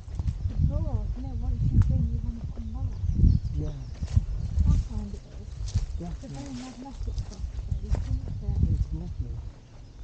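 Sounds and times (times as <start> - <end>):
footsteps on dry earth: 0.0 - 10.0
wind buffeting microphone: 0.0 - 10.0.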